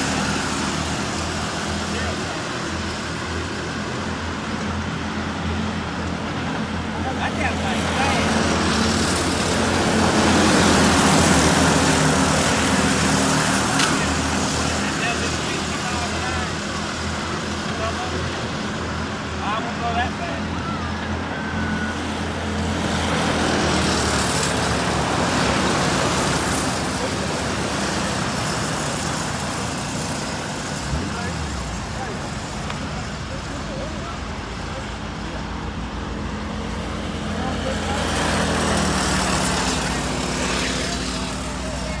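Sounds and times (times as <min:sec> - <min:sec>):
go-kart engines racing: 0:00.0 - 0:42.0.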